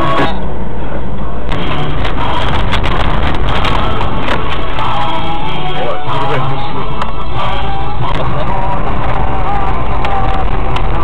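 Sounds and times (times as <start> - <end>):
music: 0.0 - 0.4, 1.4 - 11.0
engine and road rumble: 0.0 - 11.0.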